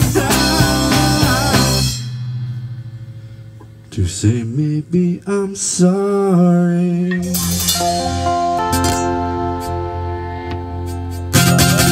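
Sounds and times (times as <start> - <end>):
rock band playing: 0.0 - 3.9, 7.2 - 11.9
low held note ringing: 1.9 - 11.3.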